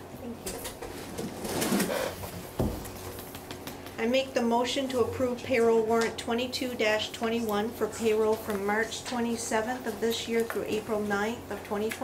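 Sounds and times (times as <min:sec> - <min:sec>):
paper rustling and shuffling: 0:07.4 - 0:12.0.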